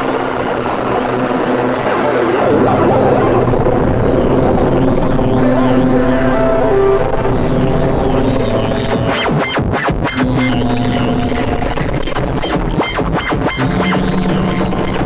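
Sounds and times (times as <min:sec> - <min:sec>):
held synthesizer chords: 0:00.0 - 0:15.0
low steady pulse: 0:00.0 - 0:15.0.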